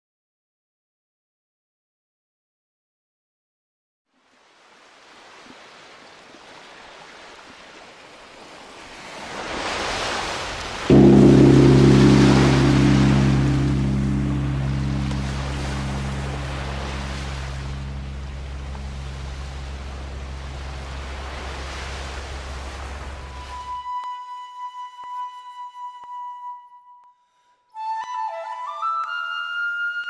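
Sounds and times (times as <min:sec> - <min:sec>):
deep low drone hit: 0:10.9 - 0:23.4
hissing wash: 0:10.9 - 0:23.4.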